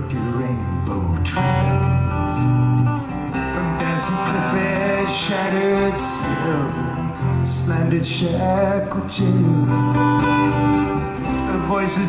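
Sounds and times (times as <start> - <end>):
person singing: 0.0 - 2.8, 3.5 - 10.2, 10.9 - 12.0
acoustic guitar: 0.0 - 12.0.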